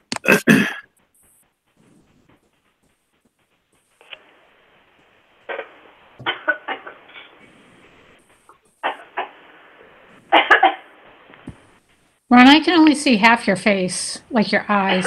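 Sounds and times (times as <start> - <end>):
person coughing over a phone line: 0.2 - 0.8.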